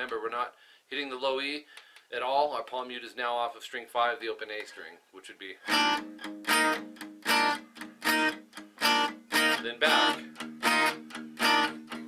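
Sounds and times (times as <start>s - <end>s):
palm-muted guitar notes: 5.6s - 12.0s
strummed guitar chords: 5.6s - 12.0s.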